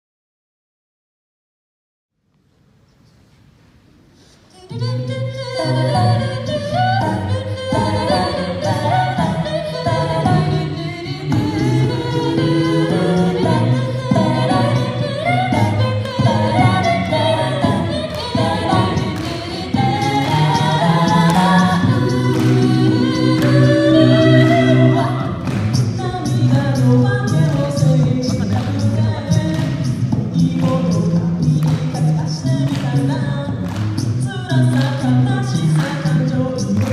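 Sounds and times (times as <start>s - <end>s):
a cappella group singing: 4.5s - 36.9s
vocal percussion beat: 4.7s - 36.9s.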